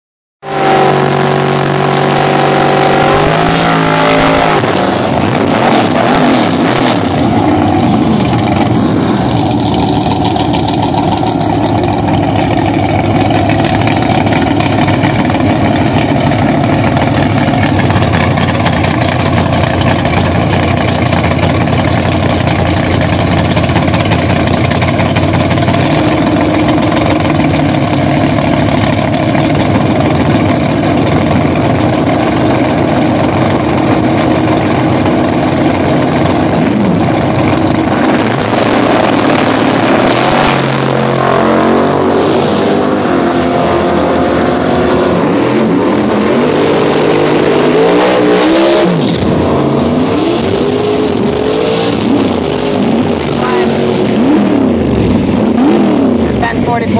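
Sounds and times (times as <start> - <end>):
drag race car engines roaring: 0.4 - 56.9.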